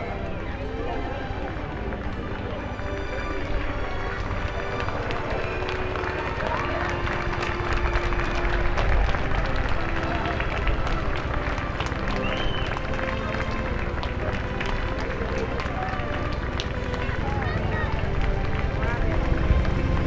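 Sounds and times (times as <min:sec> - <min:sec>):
crowd chatting indistinctly: 0:00.0 - 0:20.0
steady low rumble: 0:16.4 - 0:20.0.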